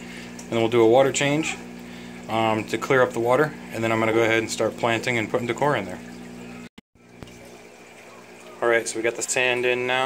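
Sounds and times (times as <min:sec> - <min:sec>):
water trickling into tank: 0:00.0 - 0:10.0.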